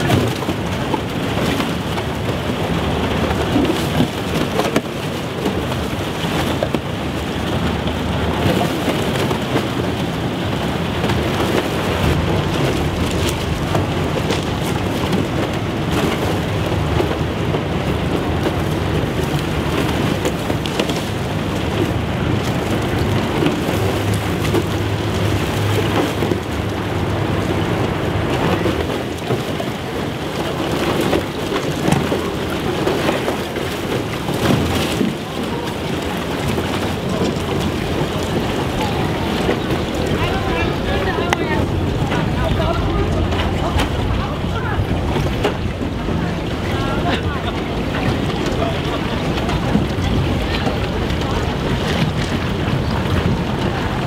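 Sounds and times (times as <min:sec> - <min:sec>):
low hum from ship: 0:00.0 - 0:54.0
wind noise on microphone: 0:00.0 - 0:54.0.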